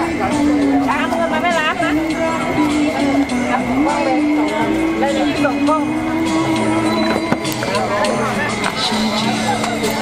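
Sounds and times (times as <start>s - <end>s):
music with long held note: 0.0s - 10.0s.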